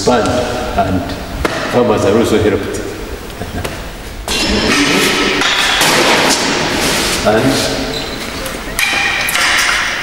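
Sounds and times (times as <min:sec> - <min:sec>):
glass bottles clinking: 0:08.4 - 0:10.0.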